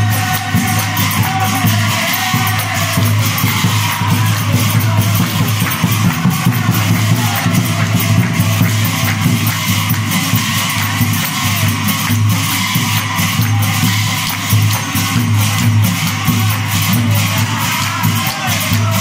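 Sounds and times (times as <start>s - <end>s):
hand cymbals clashing: 0.0s - 19.0s
hands clapping: 0.0s - 19.0s
men singing: 0.0s - 19.0s.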